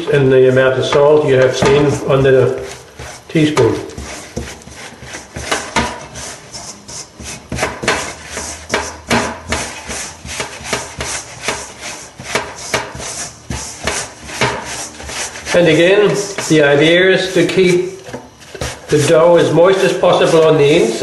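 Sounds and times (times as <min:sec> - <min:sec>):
hand kneading dough in glass bowl: 0:00.0 - 0:21.0.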